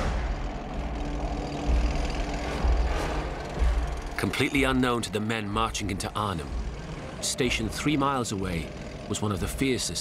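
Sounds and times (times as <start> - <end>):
tank engines rumbling: 0.0 - 10.0.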